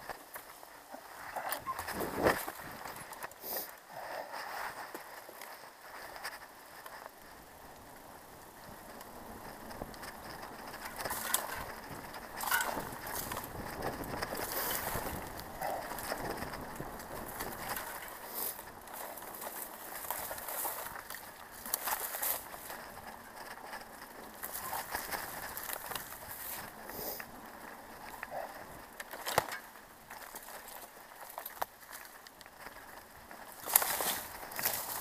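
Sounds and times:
bike knocking and rattling: 0.0 - 3.4, 4.3 - 35.0
bicycle tyres crunching on dirt: 0.0 - 35.0.

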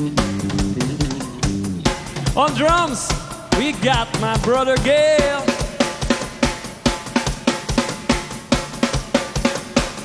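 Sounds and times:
rock drum kit groove: 0.0 - 10.0.

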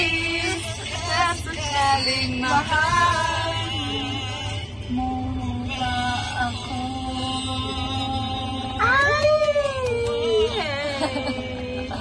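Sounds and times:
women singing karaoke: 0.0 - 12.0.

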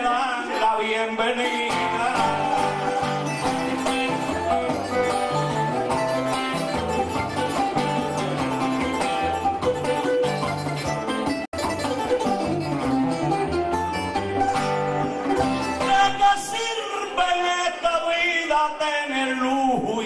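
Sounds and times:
plucked strings playing melody: 1.4 - 16.3
repeating bass line: 1.9 - 15.9.

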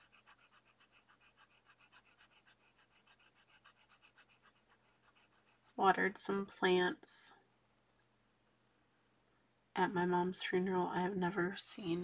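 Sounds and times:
marker scratching on paper: 0.0 - 6.0.

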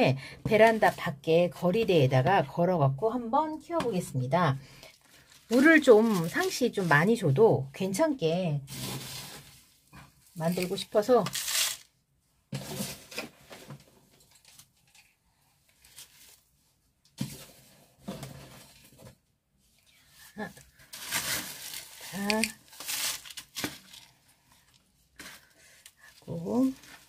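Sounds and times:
plant roots and soil tearing: 10.3 - 11.9, 20.9 - 24.2.

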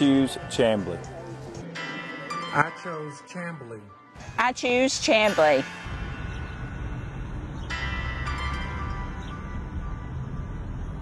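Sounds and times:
ringing bell-like tones: 1.7 - 10.6
low outdoor rumble: 4.8 - 11.0.

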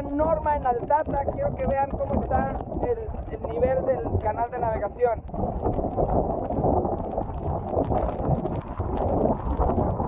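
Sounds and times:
strong wind gusting on microphone: 0.0 - 10.0.

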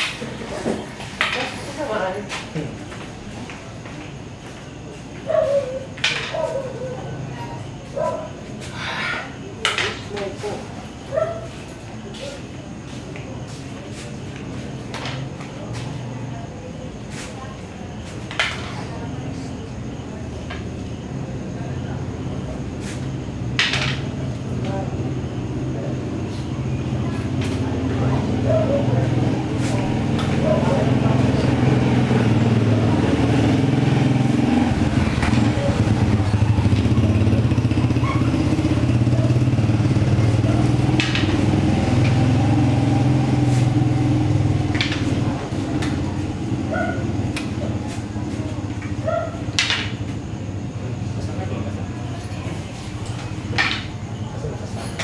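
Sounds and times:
low engine rumble: 11.8 - 55.0
rattan sticks striking: 40.8 - 42.1.

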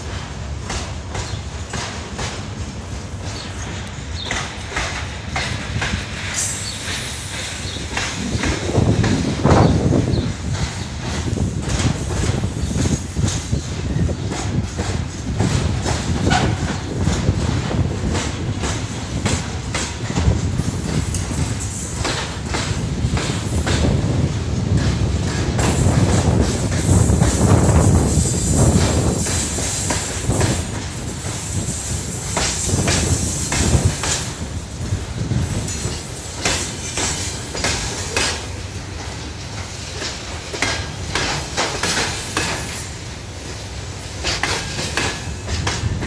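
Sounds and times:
train rumble: 0.0 - 46.0
train wheels clacking over rail joints: 0.0 - 46.0.

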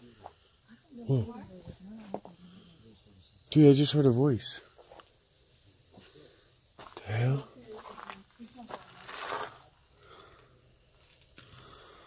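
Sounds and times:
crickets droning: 0.0 - 12.0.

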